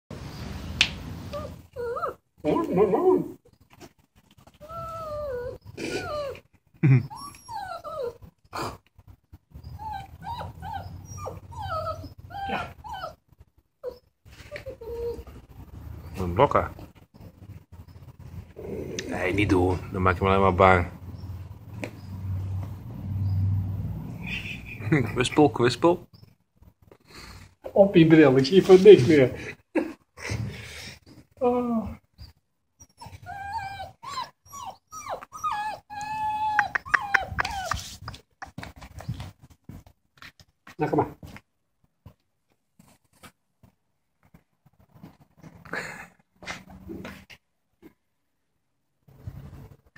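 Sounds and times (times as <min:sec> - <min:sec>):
puppy whining: 0:01.2 - 0:03.6, 0:04.3 - 0:16.2, 0:31.4 - 0:39.3
puppy yelping: 0:01.3 - 0:03.4, 0:04.5 - 0:08.8, 0:09.5 - 0:15.4, 0:32.2 - 0:38.3.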